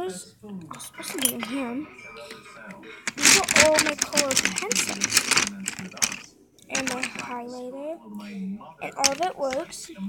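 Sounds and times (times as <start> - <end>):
person speaking: 0.7 - 7.4, 8.8 - 9.9
pencils and bottles rattling: 0.8 - 7.5, 8.8 - 10.0.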